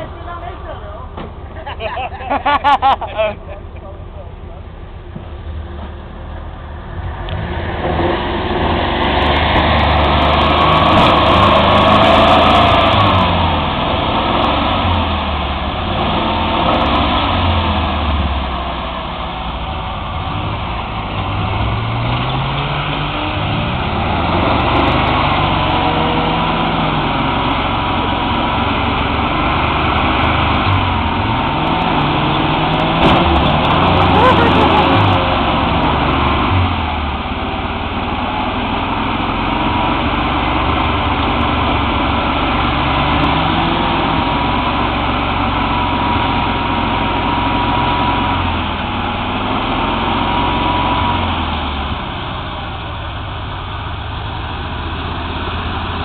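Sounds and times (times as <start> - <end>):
off-road vehicle engine revving: 5.2 - 56.0
vehicle churning through mud: 5.3 - 56.0.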